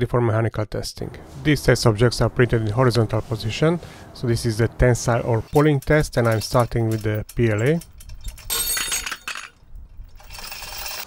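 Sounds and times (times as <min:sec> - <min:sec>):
metallic clinking of hook and chain: 0:05.4 - 0:11.0.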